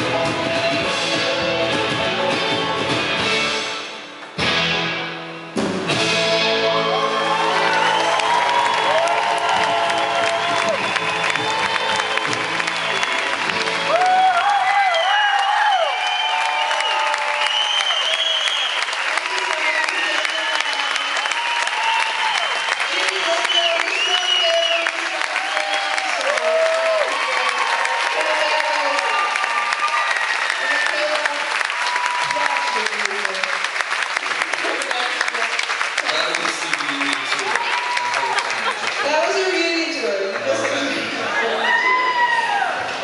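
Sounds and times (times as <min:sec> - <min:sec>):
audience shouts and whoops: 0:06.8 - 0:33.2, 0:37.2 - 0:39.1, 0:41.0 - 0:43.0
audience clapping: 0:07.0 - 0:43.0.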